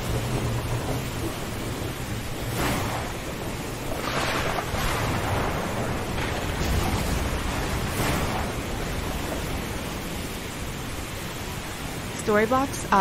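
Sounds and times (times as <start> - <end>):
wind rushing: 0.0 - 12.2
low thunder rumble: 0.0 - 13.0
surf: 0.0 - 13.0.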